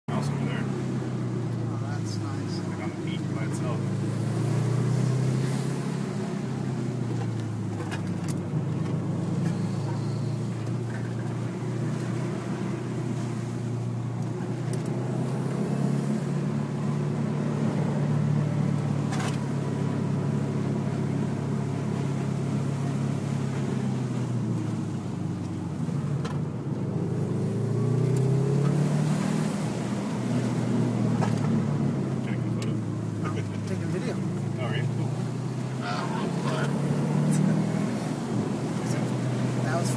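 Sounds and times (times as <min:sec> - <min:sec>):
car engine revving: 0:00.1 - 0:39.9.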